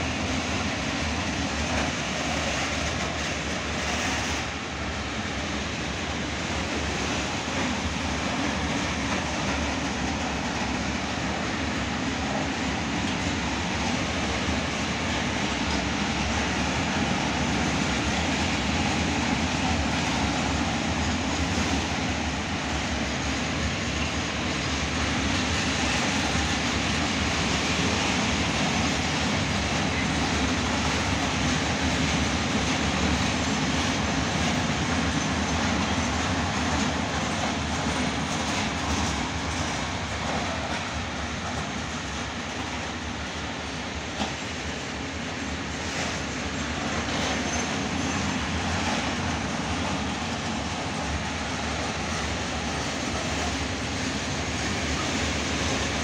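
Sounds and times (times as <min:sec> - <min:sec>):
freight train rumbling past: 0:00.0 - 0:56.0.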